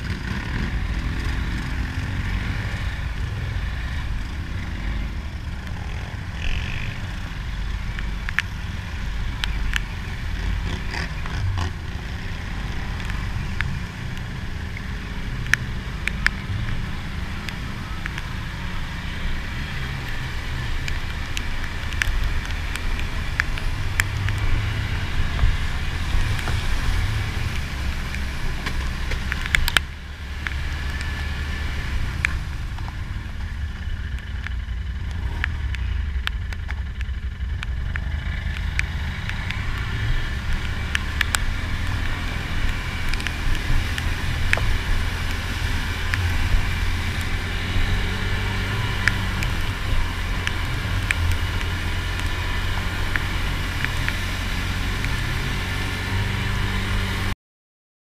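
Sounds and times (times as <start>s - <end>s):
atv engine running: 0.0s - 57.3s.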